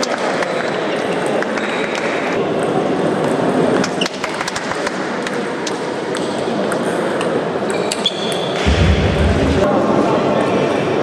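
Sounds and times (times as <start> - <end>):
chatter of voices: 0.0 - 11.0
low rumble: 8.7 - 9.7.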